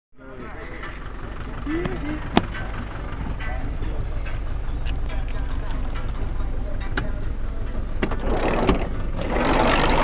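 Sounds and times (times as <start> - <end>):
people's voices: 0.2 - 10.0
steady low rumble: 0.2 - 10.0
person vocalizing uh: 1.6 - 2.3.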